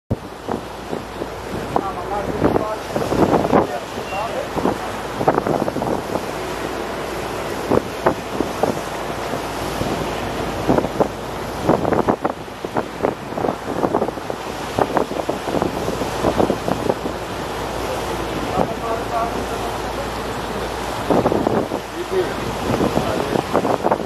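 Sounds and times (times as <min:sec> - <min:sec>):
water rushing along boat hull: 0:00.1 - 0:24.0
water splashes: 0:00.1 - 0:24.0
wind buffeting microphone: 0:00.1 - 0:24.0.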